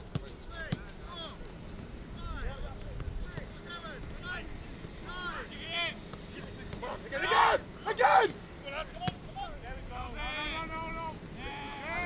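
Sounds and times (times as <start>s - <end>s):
players calling out: 4.3s - 9.4s.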